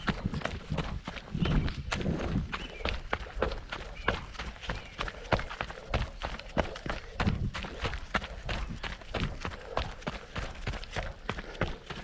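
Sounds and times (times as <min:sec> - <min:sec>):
running footsteps on dry leaves: 0:00.0 - 0:12.0.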